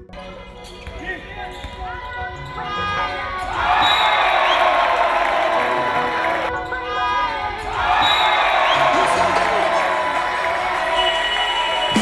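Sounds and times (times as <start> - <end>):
players' voices: 0.1 - 12.0.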